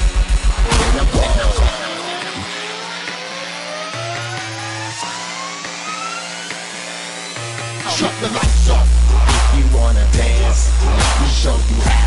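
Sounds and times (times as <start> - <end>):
held synth chords: 0.0 - 12.0
pulsing heavy bass beat: 0.0 - 12.0
rising synth tone: 0.0 - 12.0.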